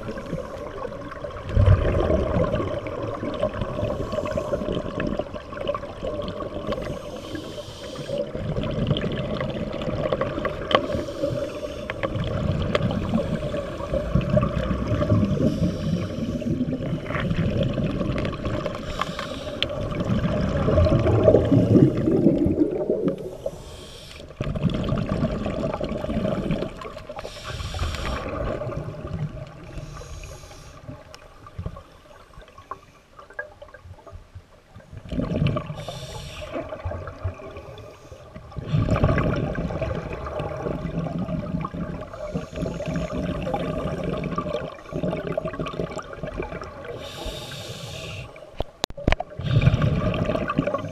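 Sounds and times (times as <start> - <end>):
exhaled bubbles gurgling underwater: 0.0 - 50.9
regulator hissing inhalations: 6.8 - 8.2, 10.8 - 12.0, 15.4 - 16.6, 18.8 - 19.8, 23.2 - 24.3, 27.2 - 28.3, 29.7 - 30.9, 35.8 - 36.7, 46.9 - 48.4.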